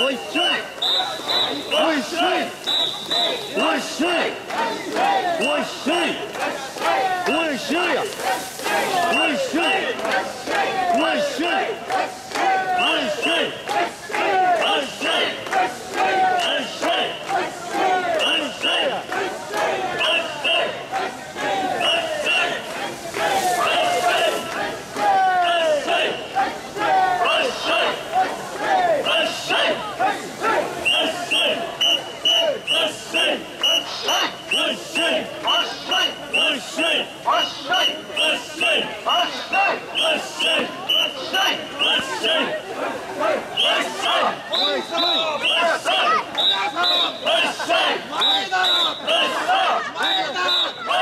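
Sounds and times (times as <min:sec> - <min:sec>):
crowd chanting in unison: 0:00.0 - 0:51.0.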